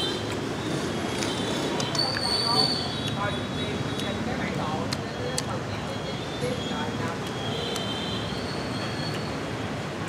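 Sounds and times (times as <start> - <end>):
traffic: 0.0 - 10.0
people talking: 1.7 - 8.0.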